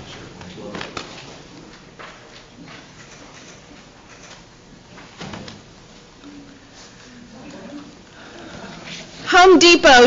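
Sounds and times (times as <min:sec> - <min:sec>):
people moving about: 0:00.0 - 0:09.6.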